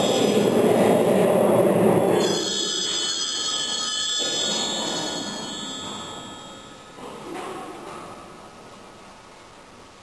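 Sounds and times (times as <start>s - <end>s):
hand bells ringing: 2.2s - 7.0s.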